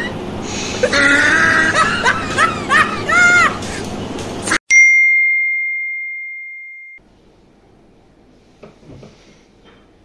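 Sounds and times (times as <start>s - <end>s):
bell-like ding: 4.7s - 7.0s.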